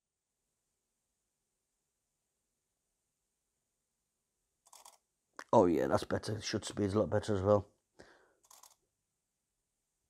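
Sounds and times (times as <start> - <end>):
faint handling sound: 8.4 - 8.8.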